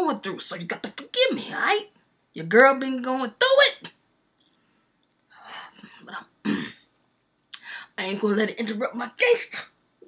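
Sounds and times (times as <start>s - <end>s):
woman clearing her throat: 6.4s - 6.8s
woman breathing: 7.6s - 8.0s.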